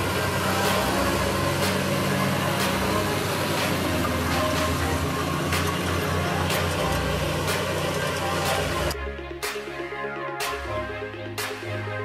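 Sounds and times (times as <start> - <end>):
tractor diesel engine under load: 0.0 - 9.0.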